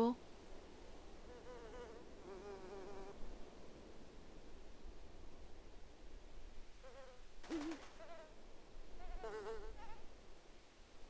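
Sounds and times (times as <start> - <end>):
insect buzzing: 1.3 - 3.2, 6.8 - 8.4, 9.0 - 10.1.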